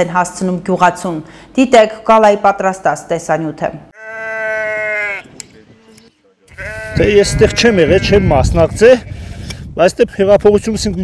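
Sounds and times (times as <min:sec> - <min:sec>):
sheep bleating: 0:04.0 - 0:05.3, 0:06.5 - 0:08.5.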